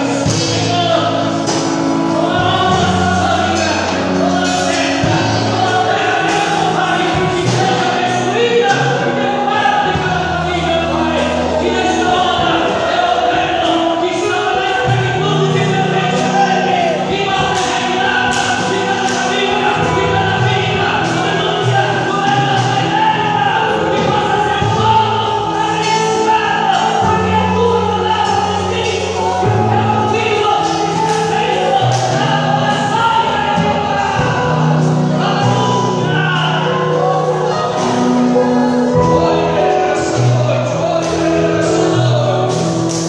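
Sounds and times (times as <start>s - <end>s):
instrumental accompaniment: 0.0s - 43.0s
voices singing together: 0.0s - 43.0s.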